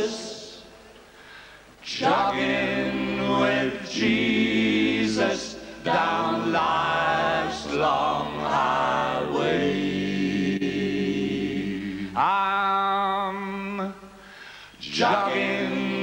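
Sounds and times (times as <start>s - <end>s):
voices singing together: 1.8s - 14.0s, 14.8s - 16.0s.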